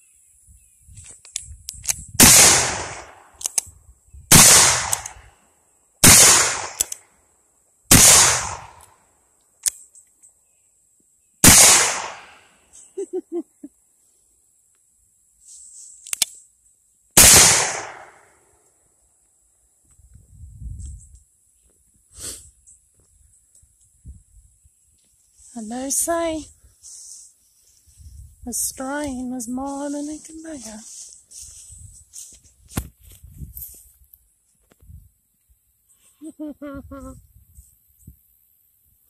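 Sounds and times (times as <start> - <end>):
small clicks: 1.0 - 2.1, 3.4 - 3.7, 6.7 - 7.0, 9.6 - 10.3, 16.0 - 16.4.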